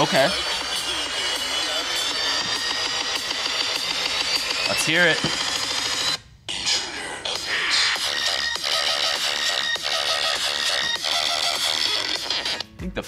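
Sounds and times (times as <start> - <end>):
dance music through phone speakers: 0.0 - 13.0.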